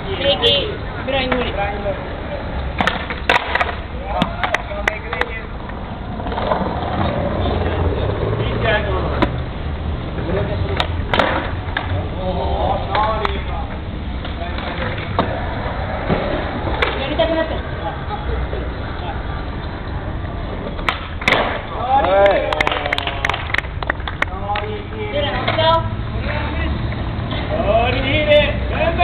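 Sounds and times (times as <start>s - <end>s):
skateboard wheels rolling: 0.0s - 29.0s
skateboard clacks and impacts: 2.7s - 8.4s, 10.7s - 12.0s, 14.2s - 17.3s, 20.4s - 24.7s.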